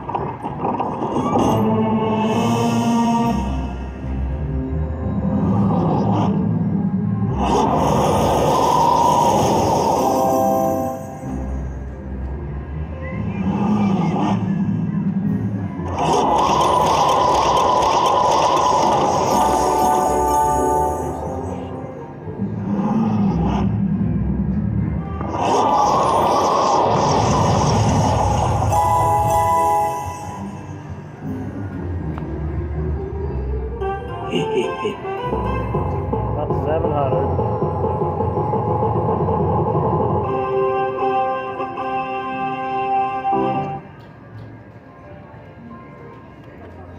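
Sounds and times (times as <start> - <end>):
slot machine music and effects: 19.2 - 22.0, 25.3 - 31.1
dense steady jingle: 34.6 - 41.1.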